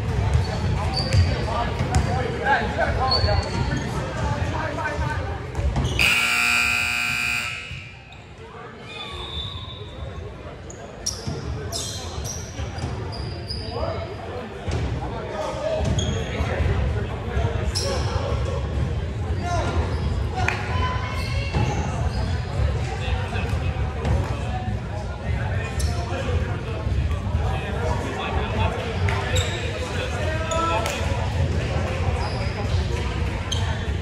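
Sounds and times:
voices in echoing gym: 0:00.0 - 0:34.0
sneaker squeaks on hardwood: 0:00.4 - 0:01.3, 0:11.0 - 0:13.8
scoreboard buzzer blast: 0:06.0 - 0:08.0.

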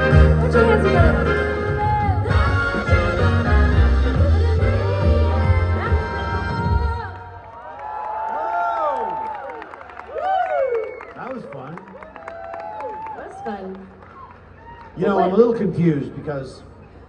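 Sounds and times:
woman singing: 0:03.6 - 0:07.3
audience cheering and whooping: 0:06.9 - 0:15.2.

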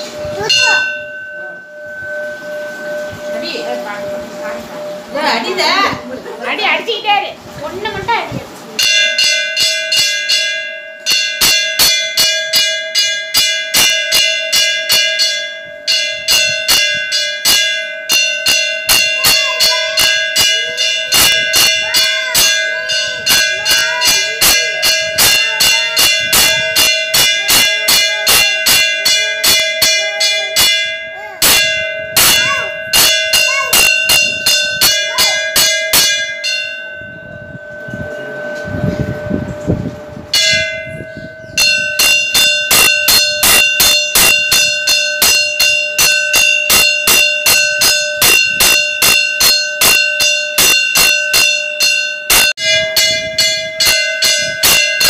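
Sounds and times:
temple bell ringing rapidly: 0:00.0 - 0:07.0, 0:08.8 - 0:55.0.

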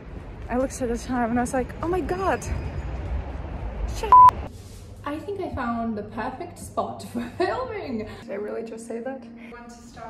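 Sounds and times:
censor beep: 0:04.1 - 0:04.4.

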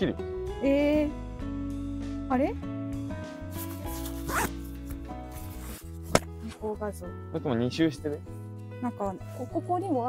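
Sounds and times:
background music: 0:00.0 - 0:10.0
cable tie zipping tight: 0:03.5 - 0:04.8.

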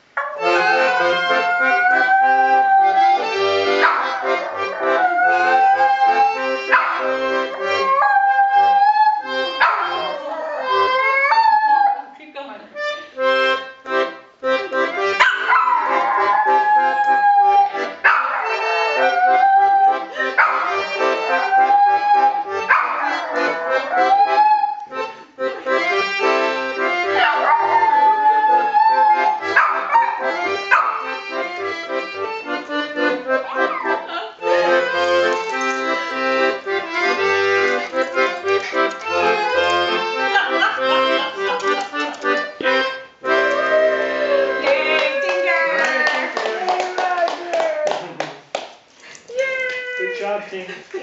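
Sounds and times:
accordion chords: 0:00.0 - 0:11.3, 0:12.3 - 0:46.5
dog howling: 0:00.2 - 0:12.1, 0:15.2 - 0:24.9, 0:27.1 - 0:31.0, 0:33.4 - 0:35.4, 0:39.1 - 0:40.0, 0:43.4 - 0:48.2.

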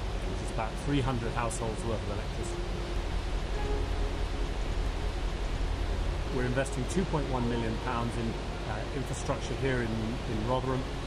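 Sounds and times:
river water pouring over a weir: 0:00.0 - 0:11.0.

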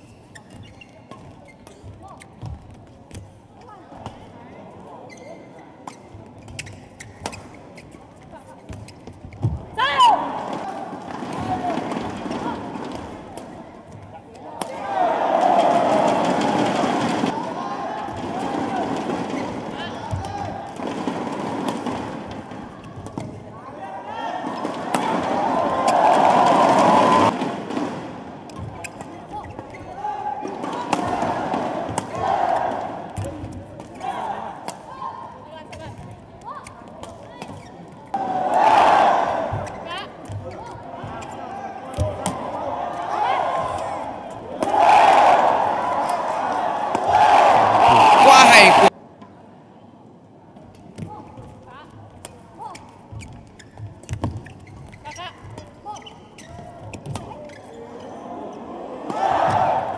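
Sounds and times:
shoes squeaking on court: 0:00.1 - 0:03.6, 0:05.0 - 0:09.6, 0:35.7 - 0:38.1, 0:52.6 - 0:58.2
crowd cheering: 0:14.7 - 0:19.1, 0:24.1 - 0:27.5, 0:30.5 - 0:33.1, 0:38.2 - 0:39.7, 0:42.1 - 0:48.9, 0:58.3 - 0:59.9
person shouting: 0:47.9 - 0:48.9.

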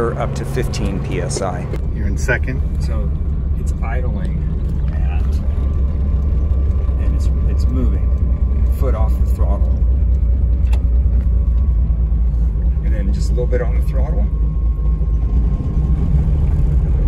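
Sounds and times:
car engine low rumble: 0:00.0 - 0:17.0.

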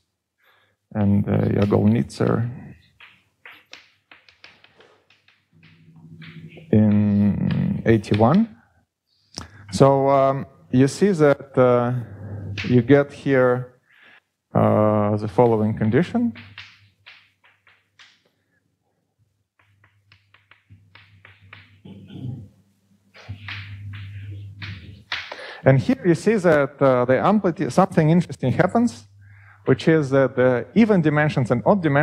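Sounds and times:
chalk tapping and scratching: 0:02.9 - 0:08.3, 0:19.6 - 0:22.0, 0:23.2 - 0:25.3.

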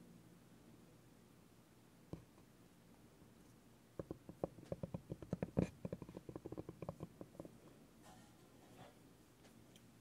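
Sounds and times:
rubber ball tapping on bamboo board: 0:04.0 - 0:07.6.

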